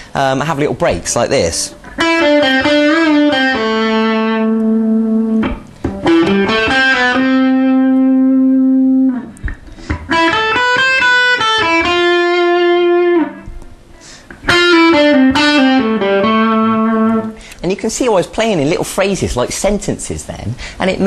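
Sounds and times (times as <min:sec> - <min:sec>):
electric guitar lead line: 0:01.7 - 0:17.5.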